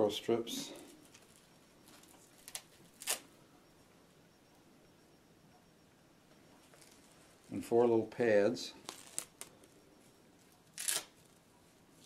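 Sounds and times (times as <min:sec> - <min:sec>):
velcro crackles: 0:01.0 - 0:03.3, 0:06.6 - 0:07.6, 0:08.8 - 0:09.5, 0:10.6 - 0:11.5.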